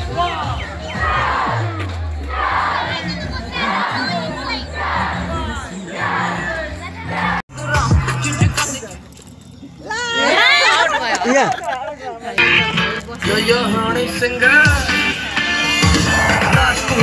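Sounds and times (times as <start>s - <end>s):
background music: 0.0s - 9.0s, 12.4s - 17.0s
crowd shouting and cheering: 0.0s - 9.0s, 12.3s - 17.0s.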